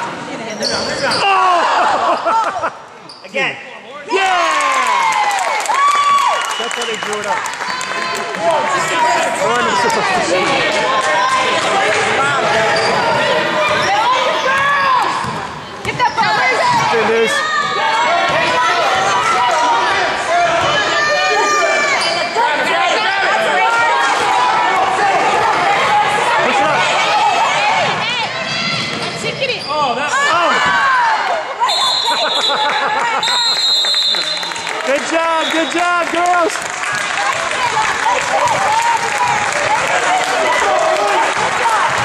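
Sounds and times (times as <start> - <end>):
sneakers squeaking on hardwood floor: 0.5 - 1.2, 12.6 - 16.9, 28.6 - 30.0
people shouting in a gym: 8.0 - 33.3, 36.8 - 42.0.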